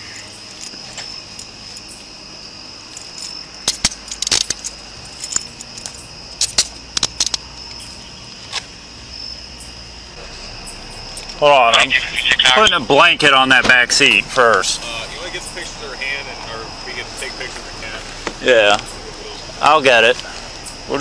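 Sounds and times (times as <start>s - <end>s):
night insects chirring: 0.0s - 21.0s
metallic gear clicks and jangles: 2.9s - 7.9s.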